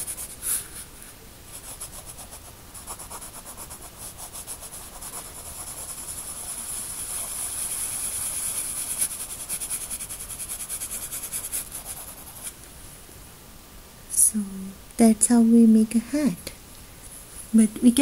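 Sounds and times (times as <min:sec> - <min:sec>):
pencil scratching on paper: 0:00.0 - 0:00.8, 0:01.5 - 0:12.6.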